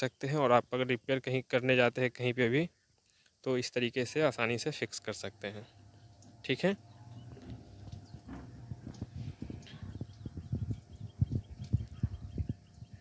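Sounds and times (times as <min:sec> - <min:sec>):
washing machine humming: 0:04.1 - 0:13.0
trickle of water: 0:05.0 - 0:13.0
soft knocks: 0:07.4 - 0:09.1.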